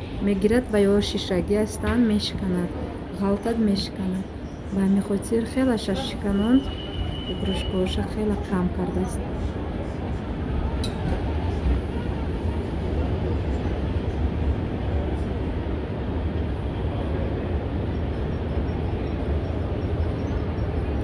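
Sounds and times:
murmur of crowd voices: 0.0s - 21.0s.

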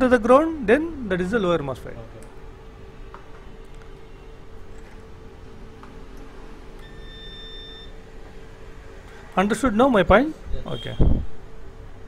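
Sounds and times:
multimeter continuity beep: 6.8s - 8.0s.

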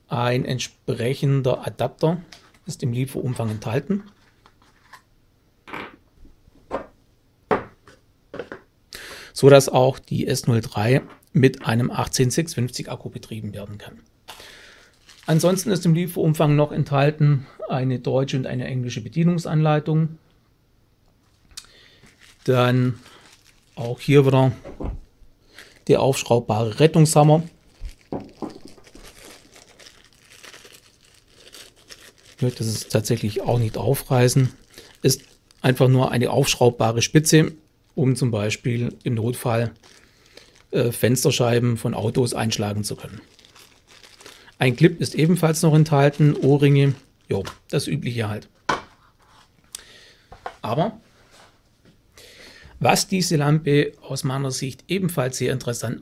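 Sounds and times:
plastic bag crinkling: 14.4s - 16.0s, 21.7s - 24.7s, 25.4s - 48.3s.

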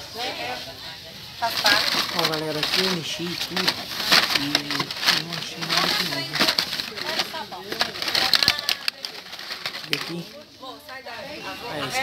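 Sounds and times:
background chatter: 0.0s - 12.0s
plastic packs clattering in box: 1.4s - 10.4s.

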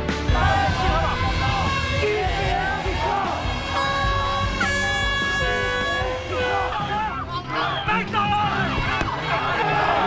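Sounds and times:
background music: 0.0s - 10.0s
protest crowd: 0.2s - 10.0s
air horn blast: 0.8s - 7.3s.

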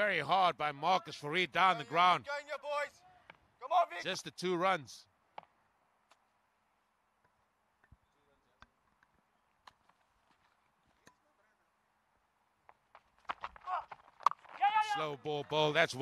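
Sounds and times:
person speaking: 0.0s - 2.4s
man exclaiming: 0.0s - 4.1s, 14.6s - 15.2s.

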